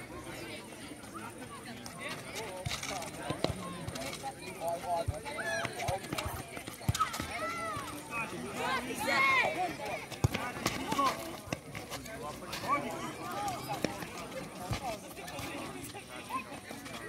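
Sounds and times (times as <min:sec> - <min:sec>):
footfalls on concrete: 0:10.1 - 0:16.0.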